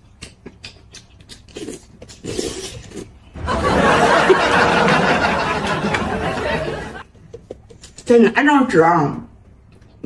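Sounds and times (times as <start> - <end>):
wet chewing clicks: 0.0 - 3.2
noodle slurps: 1.4 - 3.2.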